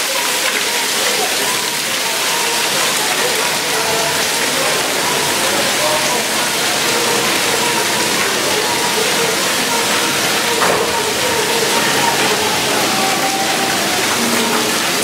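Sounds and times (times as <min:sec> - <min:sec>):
background voices: 0:00.0 - 0:15.0
water jets hissing and splashing: 0:00.0 - 0:15.0.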